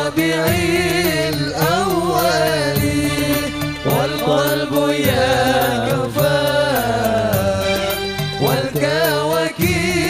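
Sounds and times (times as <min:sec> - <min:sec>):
instrumental accompaniment: 0:00.0 - 0:10.0
men singing devotional song: 0:00.0 - 0:10.0.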